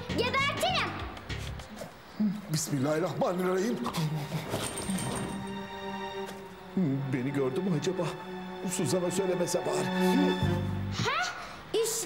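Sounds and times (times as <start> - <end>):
comic background music: 3.7 - 11.1.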